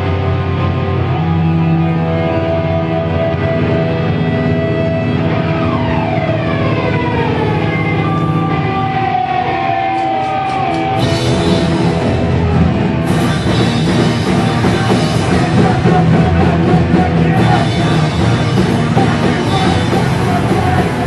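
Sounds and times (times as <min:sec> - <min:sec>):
distorted electric guitars: 0:00.0 - 0:21.0
punk band playing: 0:00.0 - 0:21.0.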